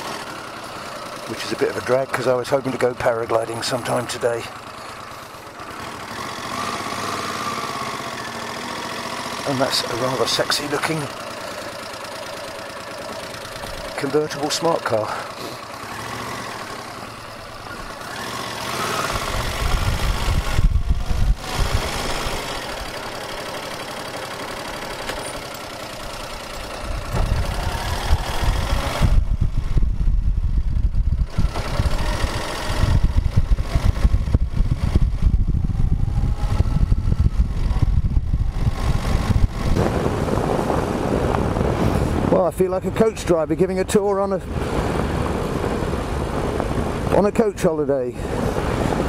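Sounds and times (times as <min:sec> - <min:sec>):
motorcycle engine running: 0:00.0 - 0:49.0
heavy low rumble: 0:19.3 - 0:23.0, 0:26.0 - 0:47.4.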